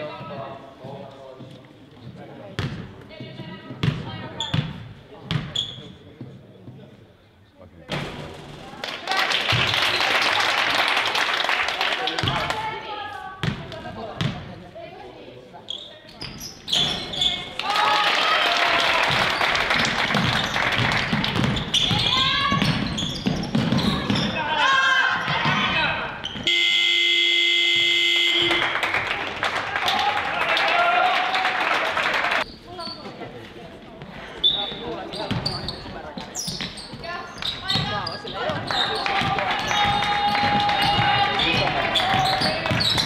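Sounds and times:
basketball bouncing: 0:02.6 - 0:05.6, 0:13.4 - 0:14.4, 0:19.1 - 0:24.4, 0:37.7 - 0:43.0
people calling out: 0:21.8 - 0:22.8, 0:37.6 - 0:43.0
scoreboard horn: 0:26.5 - 0:28.8.

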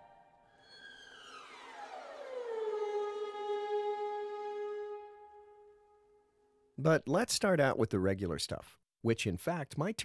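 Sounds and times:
violins playing glissando: 0:00.0 - 0:06.0.

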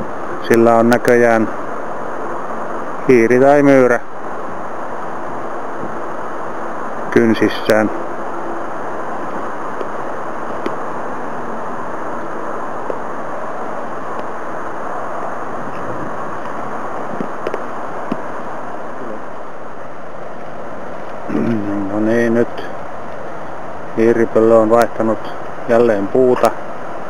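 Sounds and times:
strong wind rushing: 0:01.3 - 0:24.3.

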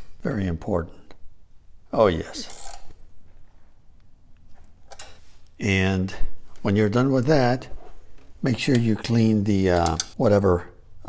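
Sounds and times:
hand handling bolt: 0:08.5 - 0:10.2.

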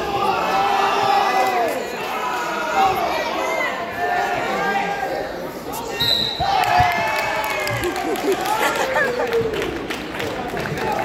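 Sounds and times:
spectators shouting and cheering: 0:00.0 - 0:11.0
referee's whistle blast: 0:05.9 - 0:06.5.

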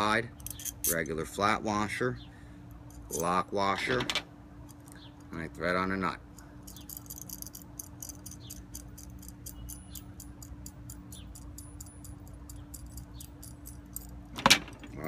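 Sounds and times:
metal nut clicking on threaded rod: 0:06.7 - 0:14.2.

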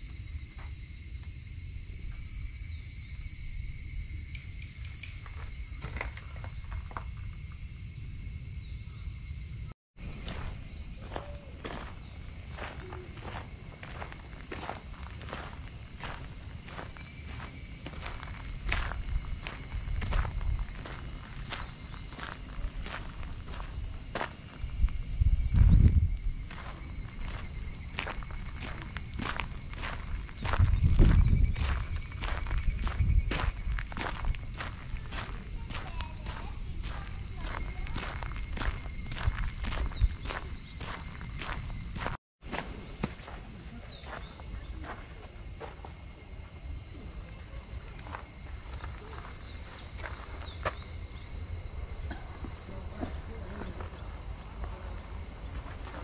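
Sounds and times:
insects chorus: 0:00.0 - 0:56.0
footsteps on gravel: 0:10.0 - 0:46.2, 0:47.4 - 0:51.1, 0:52.4 - 0:56.0
wind buffeting microphone: 0:10.1 - 0:42.2.

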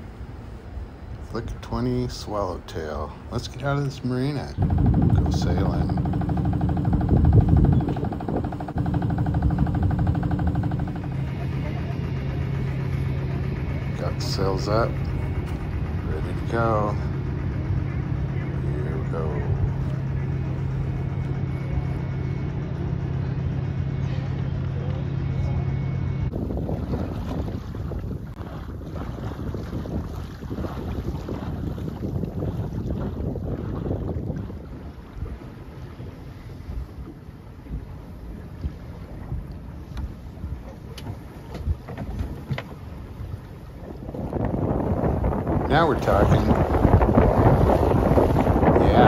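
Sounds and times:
steady low hum: 0:00.0 - 0:49.0
water rushing along hull: 0:00.0 - 0:49.0
wind buffeting microphone: 0:03.4 - 0:23.8, 0:26.3 - 0:49.0.

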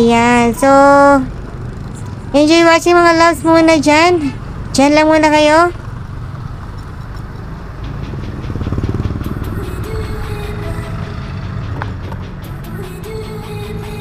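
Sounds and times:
scooter engine rumbling: 0:00.0 - 0:14.0.

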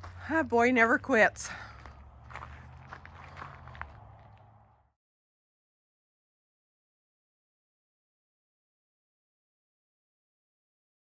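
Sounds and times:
footsteps on gravel: 0:00.0 - 0:04.7
low steady hum: 0:00.0 - 0:04.9.

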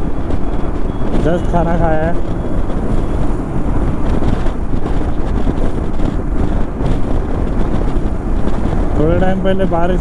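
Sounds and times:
engine and road noise: 0:00.0 - 0:10.0
wind buffeting microphone: 0:00.0 - 0:10.0.

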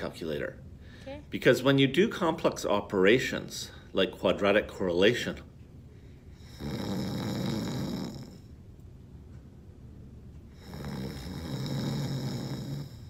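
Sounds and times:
person snoring: 0:06.4 - 0:08.5, 0:10.5 - 0:13.0.

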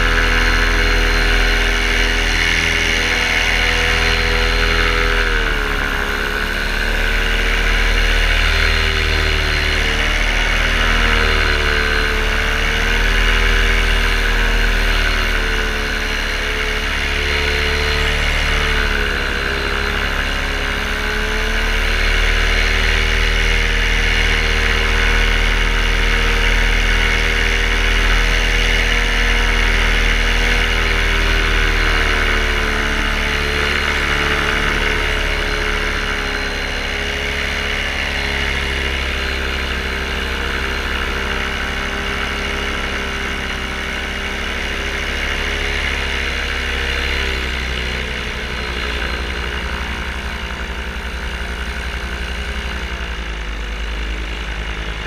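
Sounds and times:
paramotor engine and propeller: 0:00.0 - 0:55.0.

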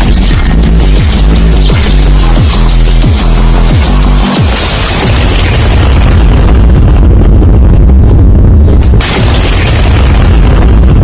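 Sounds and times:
burst of noise: 0:00.0 - 0:11.0
cinematic music with booming rumble: 0:00.0 - 0:11.0.

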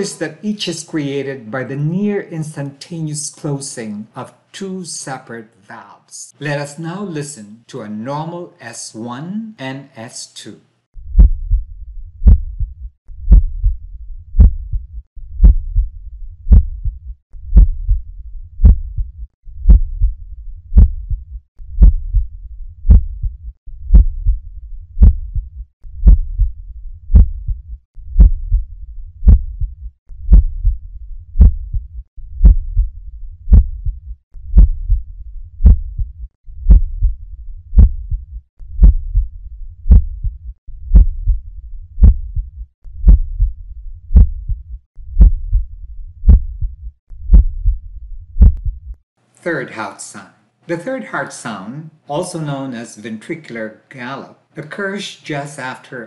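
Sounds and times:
heartbeat lub-dub: 0:11.0 - 0:30.8, 0:31.4 - 0:49.0.

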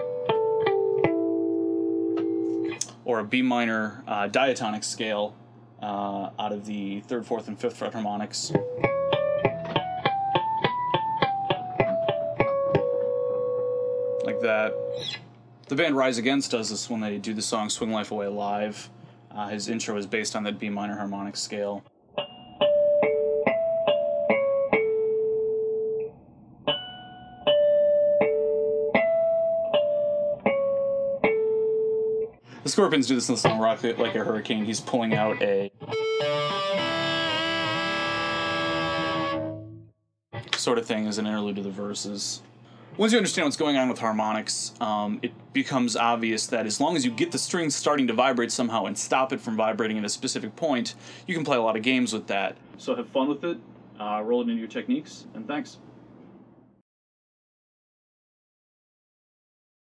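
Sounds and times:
electric guitar harmonics: 0:00.0 - 0:02.9, 0:08.5 - 0:15.2, 0:22.1 - 0:32.2, 0:33.4 - 0:39.8.

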